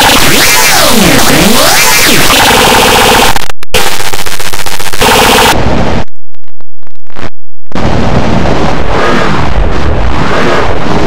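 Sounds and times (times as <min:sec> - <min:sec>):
dense rapid crackle: 0:00.0 - 0:11.0
harsh distorted noise: 0:00.0 - 0:11.0.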